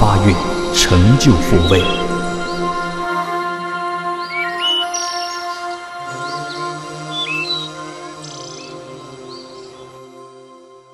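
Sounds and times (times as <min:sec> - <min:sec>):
bird chirps: 0:04.2 - 0:09.9.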